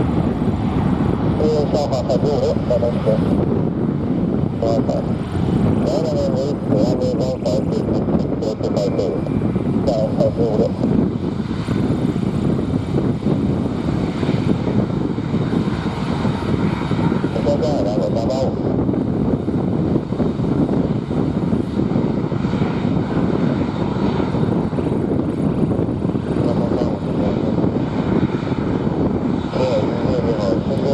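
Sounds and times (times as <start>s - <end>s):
jet engines taxiing rumble: 0.0s - 30.9s.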